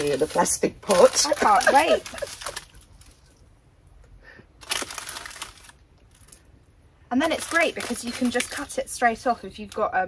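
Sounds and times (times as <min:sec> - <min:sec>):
seeds rattling in paper packet: 0:00.0 - 0:03.4, 0:04.6 - 0:06.5, 0:07.2 - 0:10.0.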